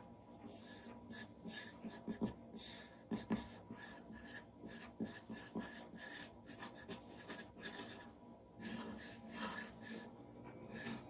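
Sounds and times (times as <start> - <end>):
pencil scratching on paper: 0.5 - 11.0.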